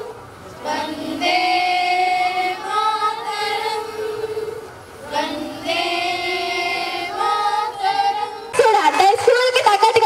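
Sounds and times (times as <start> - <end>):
girls singing unaccompanied: 0.0 - 9.4.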